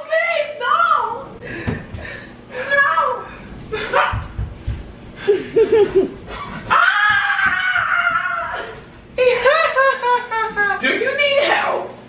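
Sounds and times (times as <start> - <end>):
person screaming: 6.7 - 8.8.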